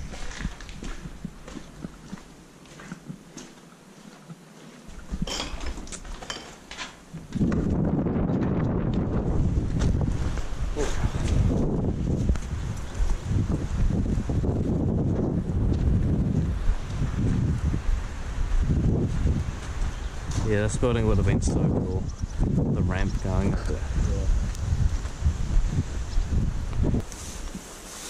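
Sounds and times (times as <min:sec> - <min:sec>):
wind buffeting microphone: 0:00.0 - 0:02.2, 0:04.9 - 0:06.2, 0:07.1 - 0:27.6
footsteps crunching on rubble: 0:00.0 - 0:17.5.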